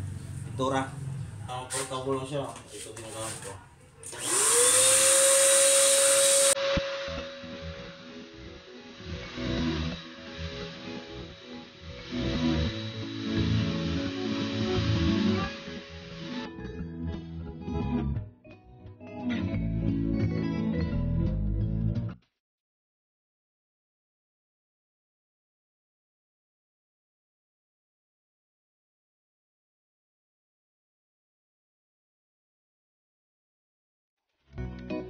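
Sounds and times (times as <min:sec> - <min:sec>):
paint sprayer hissing and whining: 0:02.9 - 0:16.8
guitar music: 0:06.6 - 0:22.1.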